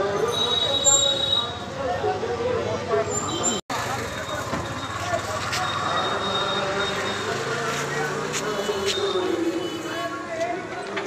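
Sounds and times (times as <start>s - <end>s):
many voices talking: 0.0s - 11.0s.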